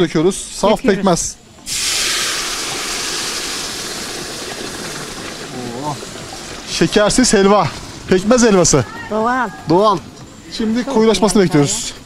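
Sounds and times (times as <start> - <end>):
syrup sizzling in hot fat: 1.7 - 7.7.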